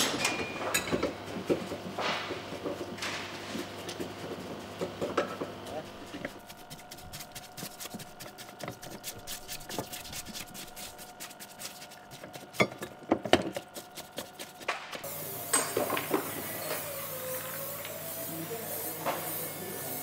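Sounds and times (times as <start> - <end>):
stiff brush scrubbing: 3.6 - 12.9, 13.5 - 15.1
parts knocking against tub: 12.3 - 13.9.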